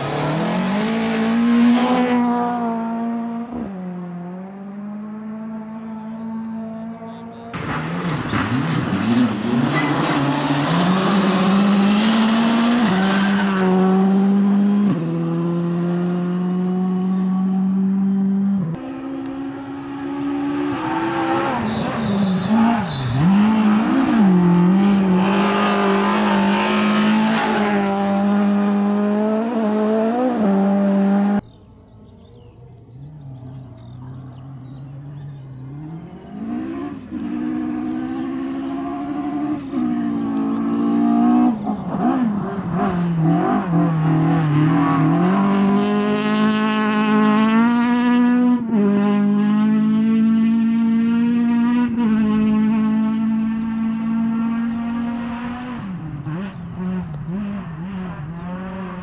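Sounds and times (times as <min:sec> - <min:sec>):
rally car engine revving: 0:00.0 - 0:31.4, 0:32.9 - 0:59.0
approaching rally car at high revs: 0:00.0 - 0:31.6, 0:32.2 - 0:59.0.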